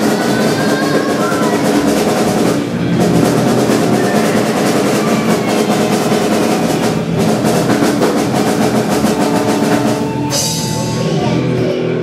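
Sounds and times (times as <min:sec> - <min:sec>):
rapid drum-kit hits: 0:00.0 - 0:11.6
distorted electric guitar chords: 0:01.7 - 0:12.0
bass guitar: 0:10.0 - 0:12.0.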